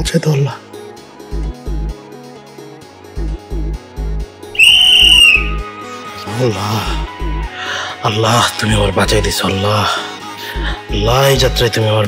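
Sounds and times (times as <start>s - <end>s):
loud high whistle: 4.6s - 5.9s.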